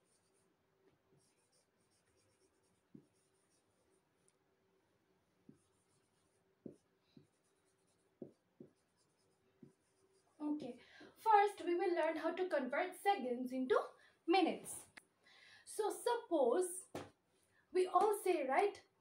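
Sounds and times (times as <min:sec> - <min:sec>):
marker pen writing on whiteboard: 0:00.0 - 0:04.4, 0:05.4 - 0:10.4
marker tip knocking on board: 0:08.2 - 0:08.8.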